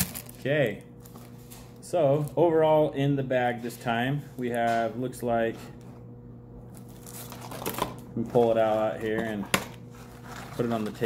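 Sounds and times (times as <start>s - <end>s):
packaging bag rustling and crinkling: 0.0s - 2.4s, 6.7s - 9.2s, 9.8s - 11.0s.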